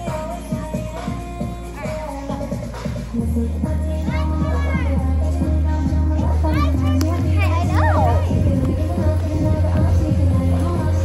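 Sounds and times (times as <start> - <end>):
loud music with heavy bass: 0.0 - 11.0
people calling out: 3.8 - 5.3, 6.3 - 8.6
high rising and falling shout: 7.4 - 8.4.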